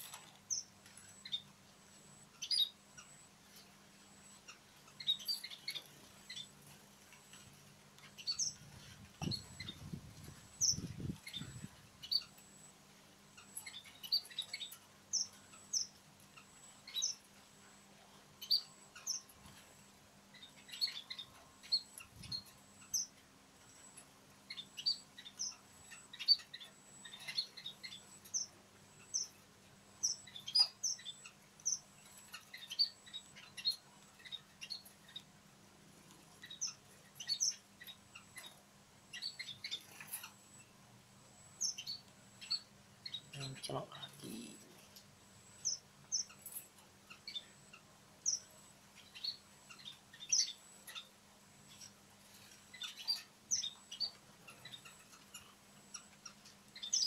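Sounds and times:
finches chirping: 0.0 - 35.4, 36.0 - 57.0.

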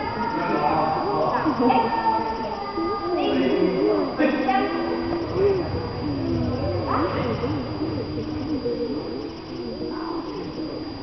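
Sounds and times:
indistinct chatter of voices: 0.0 - 11.0.

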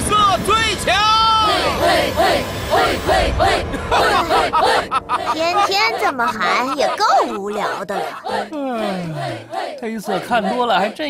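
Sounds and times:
cartoon voices chanting in unison: 1.2 - 11.0.

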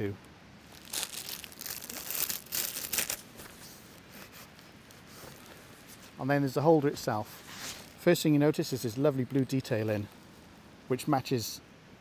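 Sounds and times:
plastic bag crinkling: 0.6 - 5.8.

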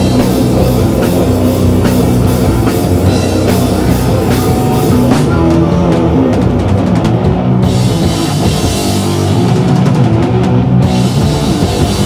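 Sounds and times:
distorted guitar and bass chords: 0.0 - 12.0
drum kit hits: 0.0 - 12.0.

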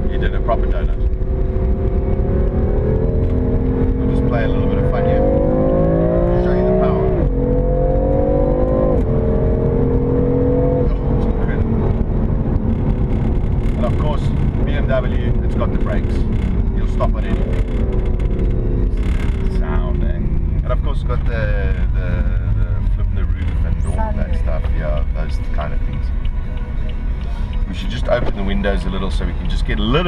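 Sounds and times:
car engine accelerating: 0.0 - 30.0.

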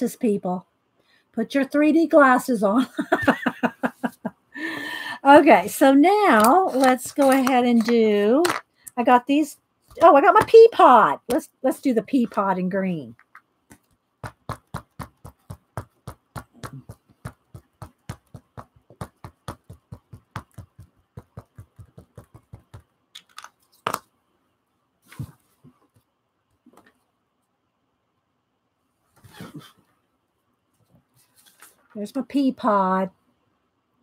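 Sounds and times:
ink pad tapping rubber stamp: 13.2 - 24.0.

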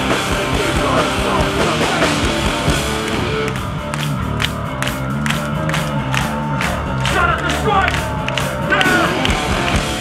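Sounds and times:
crowd cheering: 0.0 - 10.0
punk band playing live: 0.0 - 10.0
crowd clapping in rhythm: 0.3 - 10.0.

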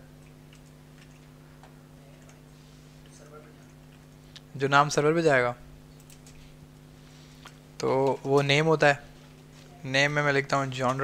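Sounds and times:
low electrical hum: 0.0 - 11.0
computer mouse clicks: 5.9 - 6.4.

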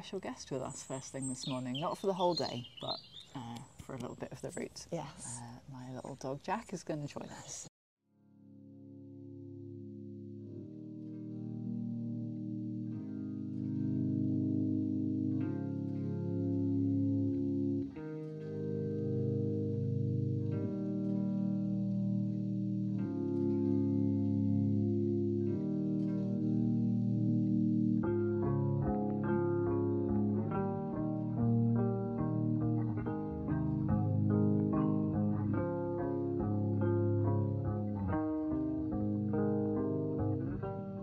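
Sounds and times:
instrumental music sustained chords: 0.0 - 3.0, 8.2 - 41.0.

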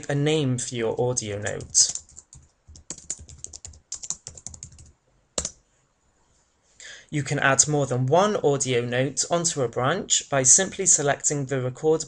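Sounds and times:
typing on computer keyboard: 1.4 - 5.6.

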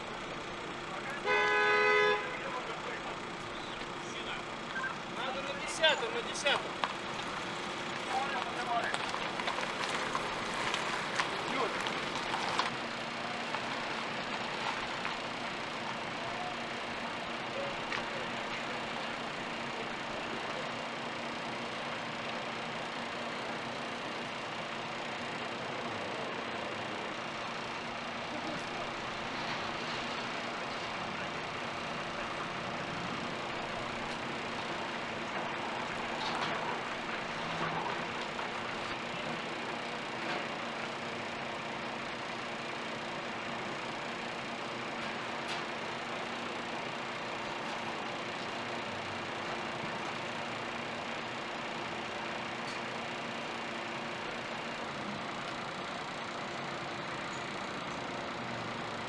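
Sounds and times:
city street traffic: 0.0 - 59.0.

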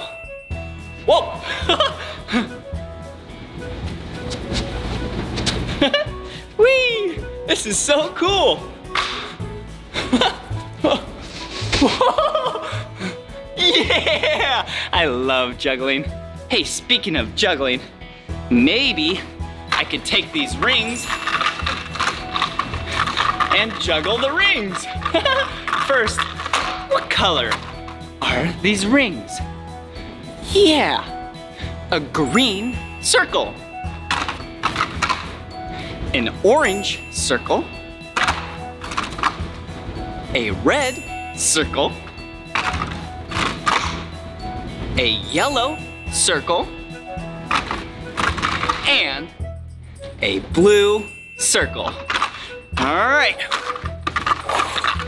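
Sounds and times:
background music: 0.0 - 55.0
plastic rings clacking together: 19.7 - 28.4, 34.0 - 35.4, 38.1 - 39.5, 42.5 - 44.2, 47.4 - 49.1, 51.6 - 55.0.

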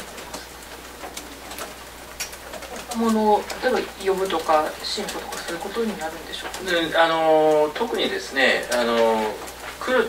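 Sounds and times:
faint clicks: 0.0 - 9.9
steady room hiss: 0.0 - 10.0.

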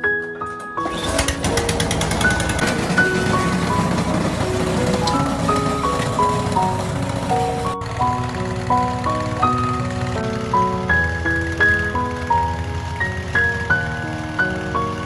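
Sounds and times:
snowblower engine running: 0.8 - 15.0.

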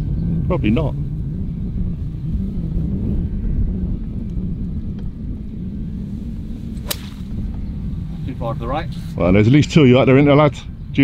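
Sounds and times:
low rumble: 0.0 - 9.6
golf club striking ball: 6.3 - 7.8.

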